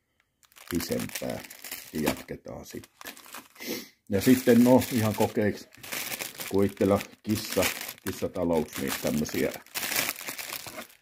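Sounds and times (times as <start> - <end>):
plastic bag crinkling: 0.4 - 3.6, 4.2 - 11.0.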